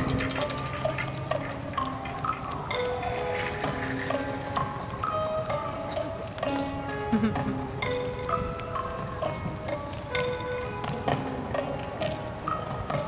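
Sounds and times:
rapid ticking clicking texture: 0:00.0 - 0:05.0
held and plucked notes: 0:00.0 - 0:13.0.

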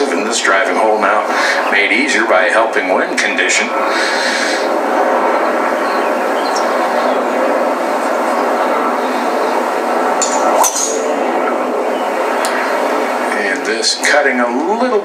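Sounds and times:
golf club striking ball: 0:10.2 - 0:11.0.

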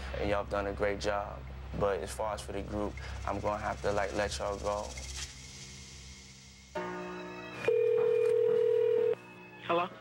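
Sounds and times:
telephone ringback tone: 0:07.7 - 0:09.2.

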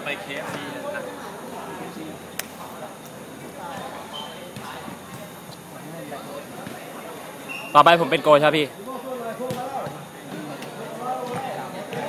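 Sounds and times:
football being kicked: 0:09.5 - 0:10.0.

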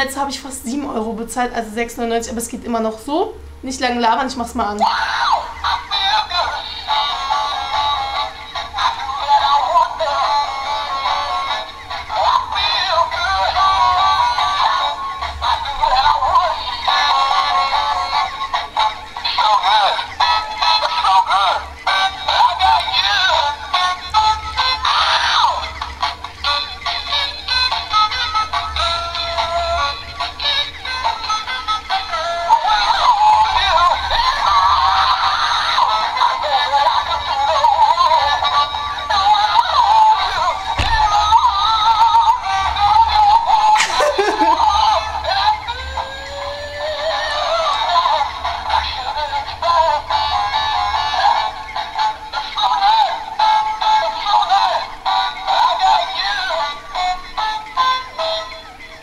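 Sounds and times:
toy playing tinny sung tune: 0:04.8 - 0:59.0.

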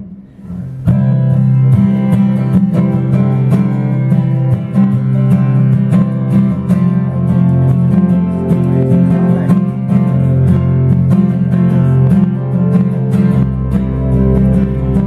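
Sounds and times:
acoustic guitars strumming: 0:00.0 - 0:15.0
live band playing: 0:00.7 - 0:15.0.

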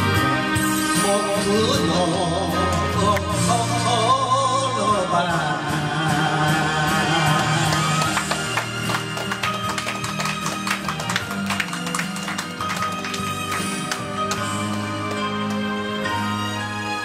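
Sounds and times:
instrumental backing track: 0:00.0 - 0:17.0
man singing with vibrato: 0:00.8 - 0:08.5.

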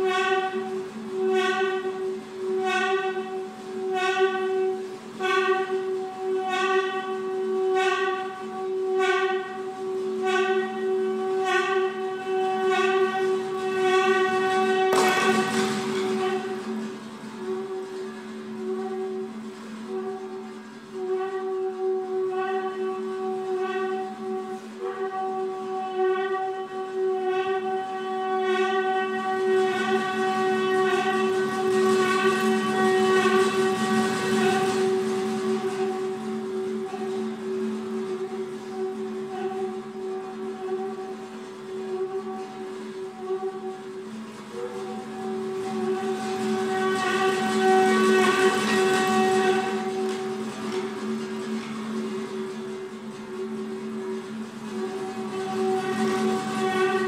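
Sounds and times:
saxophone and guitar drone: 0:00.0 - 0:57.0.

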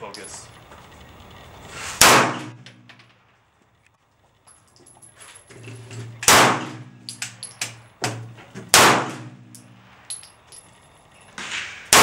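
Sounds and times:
handgun shot: 0:02.0 - 0:02.6, 0:06.3 - 0:06.9, 0:08.7 - 0:09.4, 0:11.4 - 0:12.0.

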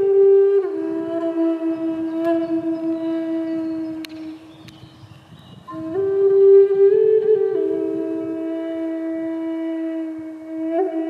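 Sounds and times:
flute holding low note: 0:00.0 - 0:04.7, 0:05.6 - 0:11.0.

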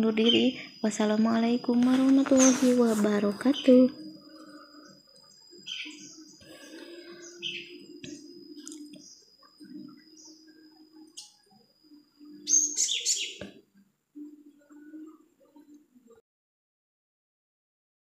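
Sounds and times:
thin high whine: 0:00.0 - 0:16.1
faint low hum: 0:00.0 - 0:16.2
bird-like chirps: 0:02.1 - 0:13.5.

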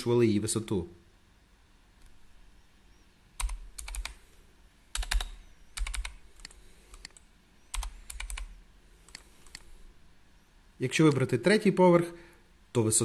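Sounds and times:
computer keyboard clicking: 0:03.4 - 0:04.2, 0:04.9 - 0:09.6.

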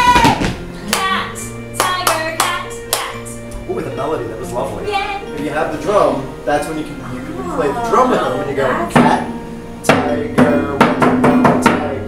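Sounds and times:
steady music bed: 0:00.0 - 0:12.0
hand claps: 0:00.2 - 0:03.6.

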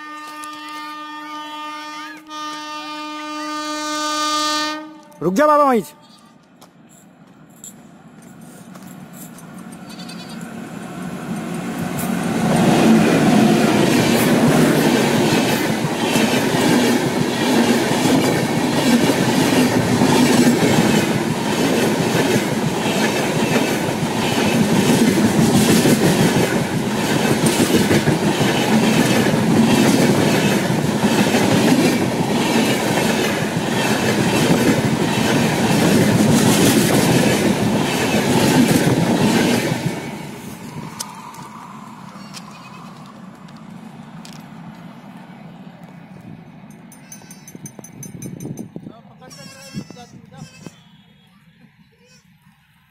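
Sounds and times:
passenger train passing at speed: 0:00.0 - 0:52.9.

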